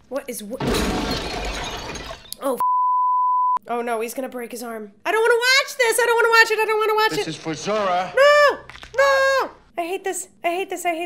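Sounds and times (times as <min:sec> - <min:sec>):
crash of something shattering: 0:00.6 - 0:02.4
censor bleep: 0:02.6 - 0:03.6
woman's startled exclamation: 0:08.2 - 0:09.6.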